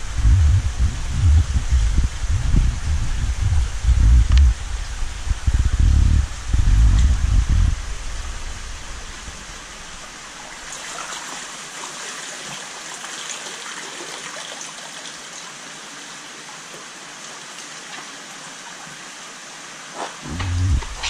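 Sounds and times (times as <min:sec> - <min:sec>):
water trickling: 0:00.0 - 0:21.0
water splashing in a tank: 0:00.1 - 0:21.0.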